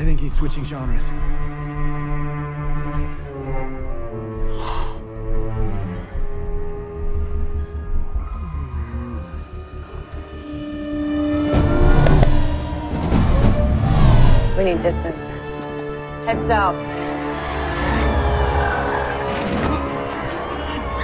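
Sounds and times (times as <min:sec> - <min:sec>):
tense orchestral action music: 0:00.0 - 0:21.0.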